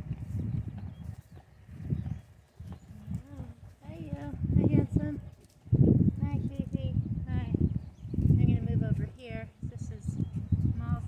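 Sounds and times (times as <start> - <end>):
horse making low sounds: 0.0 - 6.2.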